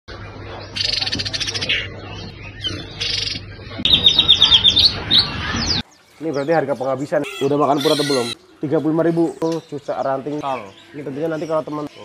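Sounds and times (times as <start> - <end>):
birds singing: 0.1 - 12.0
high bird chirps: 0.1 - 12.0
buzzy high bird trill: 0.2 - 12.0.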